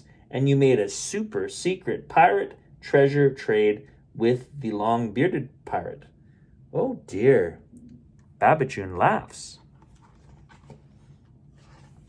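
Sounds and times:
book page turning: 9.6 - 12.0.

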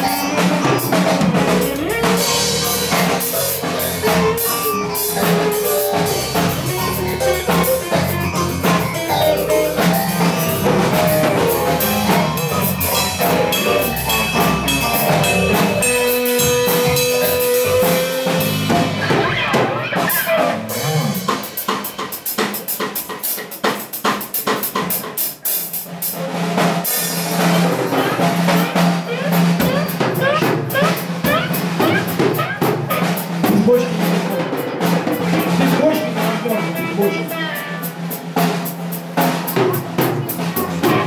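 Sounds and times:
bass drum: 0.0 - 21.9, 27.2 - 33.9, 34.6 - 41.0
live band music: 0.0 - 41.0.

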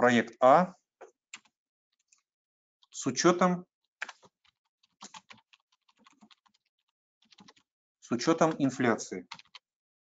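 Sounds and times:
faint keyboard typing: 1.3 - 9.7.

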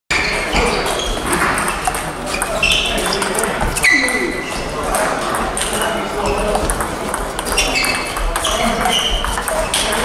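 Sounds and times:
players' voices: 0.1 - 10.0
table tennis balls clicking: 0.6 - 10.0.

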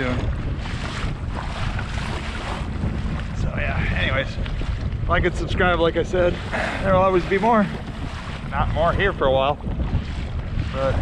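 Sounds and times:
water splashing against hull: 0.0 - 11.0
wind buffeting microphone: 0.0 - 11.0.

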